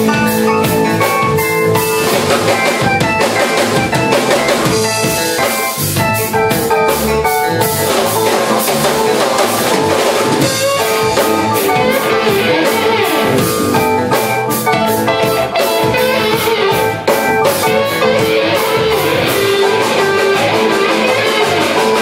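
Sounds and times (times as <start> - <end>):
drum kit hits: 0.0 - 22.0
live band playing: 0.0 - 22.0.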